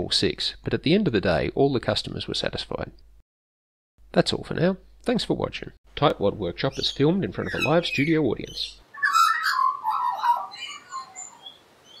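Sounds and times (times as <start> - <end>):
magpie warbling: 6.7 - 12.0.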